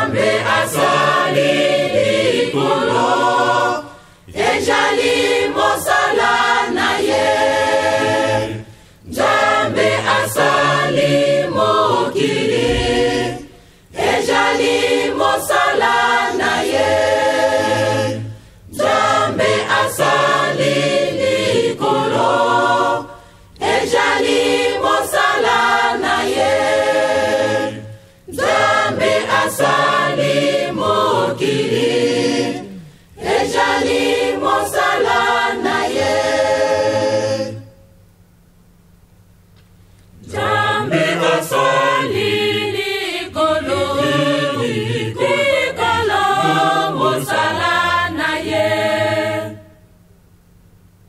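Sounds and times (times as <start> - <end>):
choir singing religious song: 0.0 - 37.9, 40.1 - 50.0.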